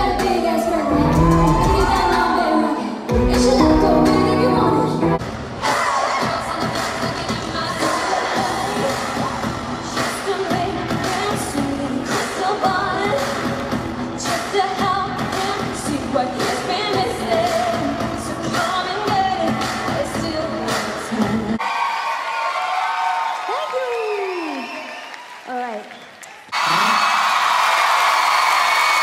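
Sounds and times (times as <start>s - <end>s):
female vocal group singing: 0.0s - 13.5s, 14.2s - 21.6s
band playing a beat: 3.1s - 4.4s.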